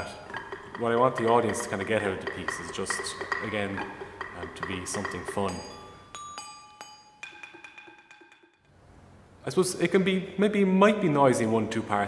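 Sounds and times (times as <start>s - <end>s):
bell-like percussion ringing: 4.5s - 8.7s.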